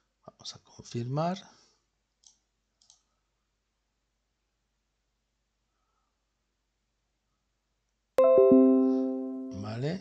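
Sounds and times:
faint computer mouse clicks: 2.2s - 3.1s.

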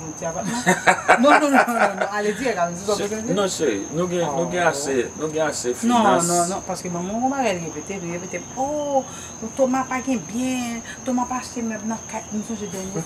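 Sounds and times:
crickets chirping: 0.0s - 13.0s
voices talking: 0.0s - 13.0s.

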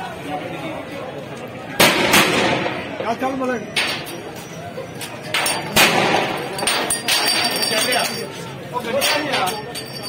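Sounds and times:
tear gas shells firing bangs: 1.8s - 2.9s, 5.6s - 7.3s.

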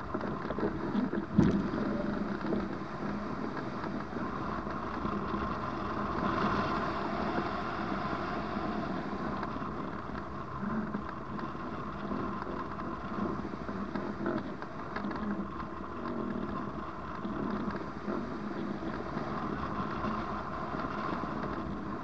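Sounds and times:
wind rushing over microphone: 0.0s - 22.0s.

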